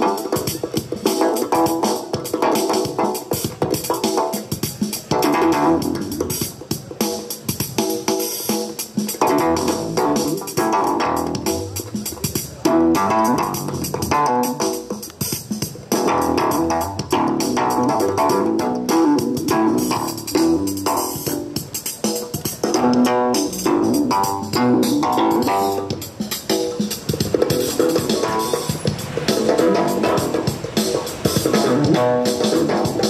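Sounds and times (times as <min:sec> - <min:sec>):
plucked bass-like notes: 0:05.1 - 0:06.4, 0:09.2 - 0:14.8, 0:15.9 - 0:21.7, 0:22.6 - 0:26.2, 0:27.1 - 0:33.0.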